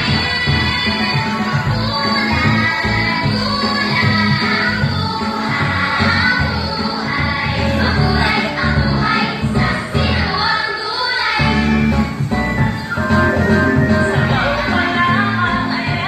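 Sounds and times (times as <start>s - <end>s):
dance song with vocals: 0.0s - 12.1s, 13.2s - 16.0s.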